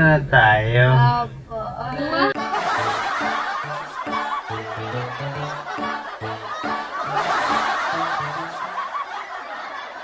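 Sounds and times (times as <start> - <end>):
people laughing: 2.0 - 10.0
bouncy background music: 2.1 - 9.0.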